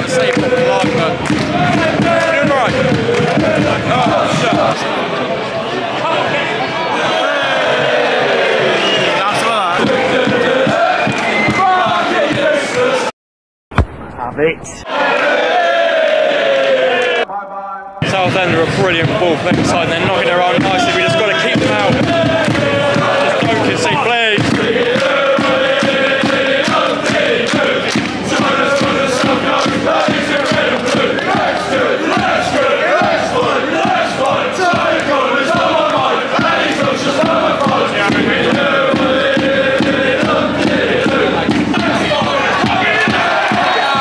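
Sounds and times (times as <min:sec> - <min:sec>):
crowd singing a chant: 0:00.0 - 0:13.1, 0:14.8 - 0:17.3, 0:18.0 - 0:44.0.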